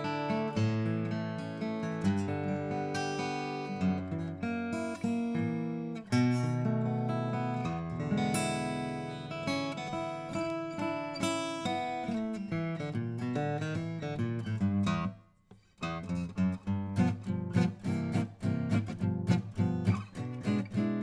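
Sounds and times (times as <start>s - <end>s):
acoustic guitar strummed and picked: 0.0s - 21.0s.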